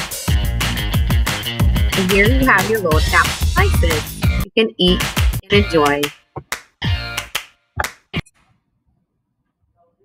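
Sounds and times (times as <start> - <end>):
recipe video music: 0.0 - 8.2.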